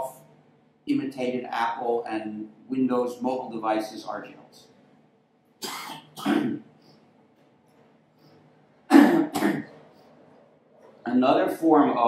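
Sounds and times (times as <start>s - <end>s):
man clearing throat: 5.6s - 6.7s, 8.9s - 9.8s.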